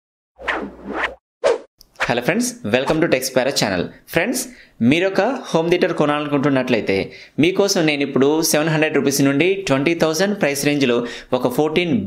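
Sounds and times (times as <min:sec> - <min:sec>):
whoosh transition effect: 0:00.4 - 0:01.7.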